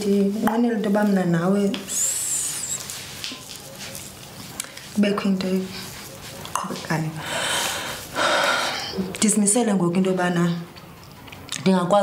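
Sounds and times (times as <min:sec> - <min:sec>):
person breathing heavily: 0:07.2 - 0:09.0.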